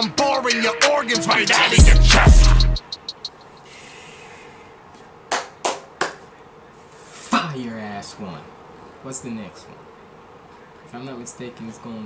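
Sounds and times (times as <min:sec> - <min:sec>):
person clapping hands: 0:05.3 - 0:06.2.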